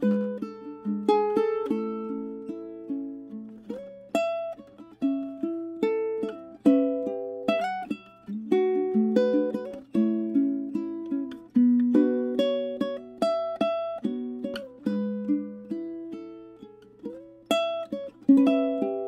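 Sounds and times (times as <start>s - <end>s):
ukulele fingerstyle melody: 0.0s - 19.0s.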